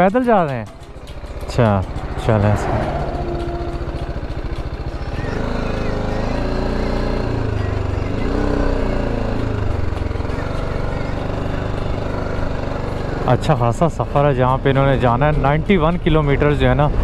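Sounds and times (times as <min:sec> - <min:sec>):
motorcycle engine idling and revving: 0:00.0 - 0:17.0.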